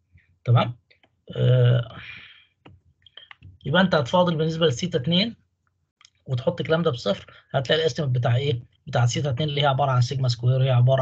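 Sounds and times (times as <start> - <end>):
man hesitation sounds: 0.5 - 0.7, 1.3 - 2.3, 3.2 - 5.3, 6.1 - 11.0.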